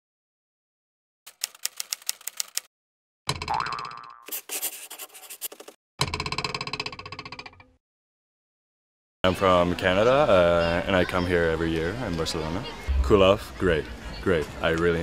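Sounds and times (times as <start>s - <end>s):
springy cartoon boing: 3.3s - 4.3s, 6.0s - 7.8s.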